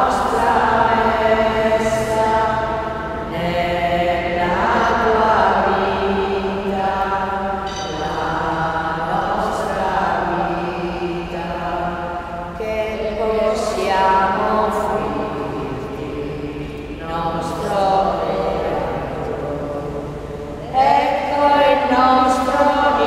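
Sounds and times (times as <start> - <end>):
sung liturgical chant: 0.0 - 23.0.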